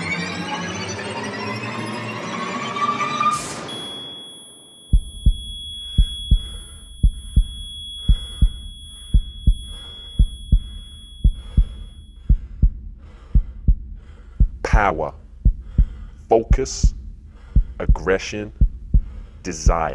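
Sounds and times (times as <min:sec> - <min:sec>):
high ringing tone: 0:03.6 - 0:12.3
heartbeat double thump: 0:04.9 - 0:19.9.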